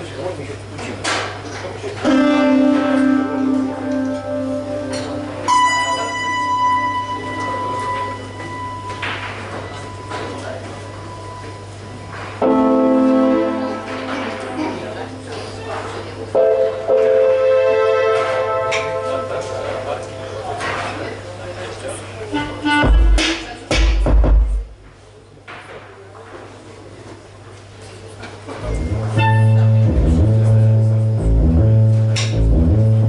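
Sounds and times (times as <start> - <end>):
live band music: 2.0 - 6.2, 22.3 - 24.7, 28.7 - 33.0
synthesizer chords: 2.0 - 9.0, 12.4 - 15.4, 16.4 - 20.5, 22.4 - 24.8, 28.6 - 33.0
bright ringing note: 2.1 - 11.7.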